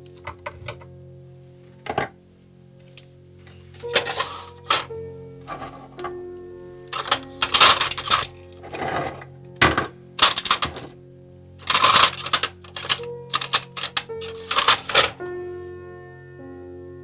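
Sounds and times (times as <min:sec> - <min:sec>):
soft piano music: 0:00.0 - 0:17.0
metal parts clattering and clinking: 0:00.2 - 0:00.9, 0:01.8 - 0:02.1, 0:03.8 - 0:06.1, 0:06.9 - 0:11.0, 0:11.6 - 0:15.2.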